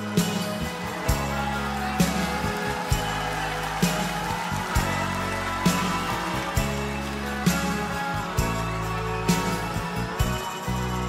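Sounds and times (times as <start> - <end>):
steady drum beat: 0.0 - 10.8.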